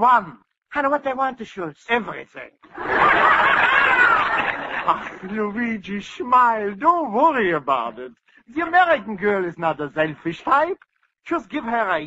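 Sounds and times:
studio audience laughing: 2.7s - 5.6s.

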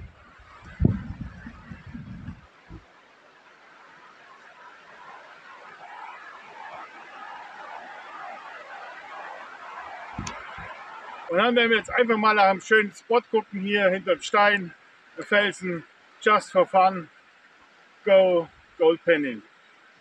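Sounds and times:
wind buffeting microphone: 0.0s - 2.9s, 10.1s - 10.8s
rushing wind: 0.0s - 3.0s, 4.9s - 12.0s
rushing water: 0.0s - 20.0s.

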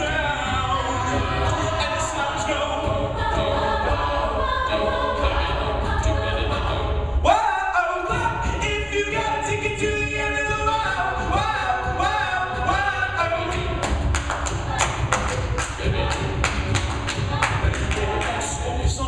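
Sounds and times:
a cappella group singing: 0.0s - 19.0s
vocal percussion: 0.0s - 19.0s.

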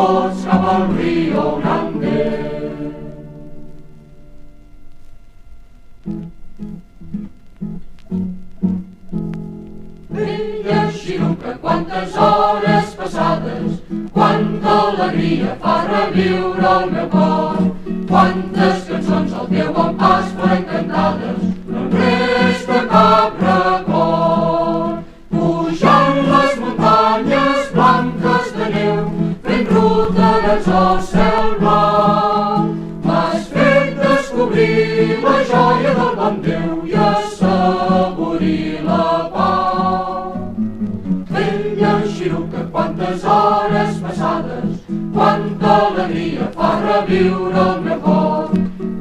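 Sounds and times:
group singing a folk song: 0.0s - 3.8s, 10.1s - 49.0s.

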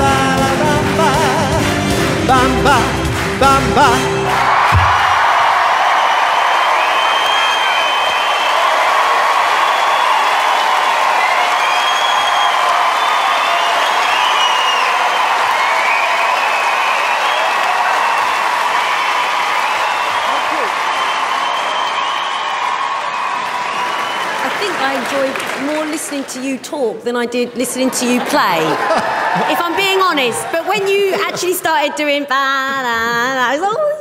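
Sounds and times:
man singing: 0.0s - 4.3s
audience applauding and cheering: 0.0s - 26.6s, 27.8s - 31.8s.

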